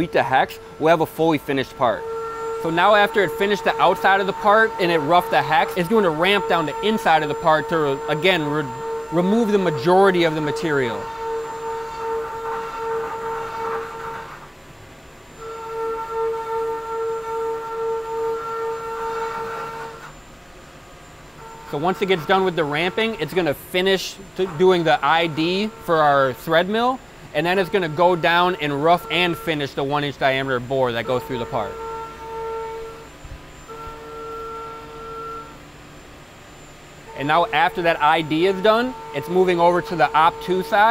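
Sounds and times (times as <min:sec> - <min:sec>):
milling machine cutting whine: 0:00.0 - 0:40.9.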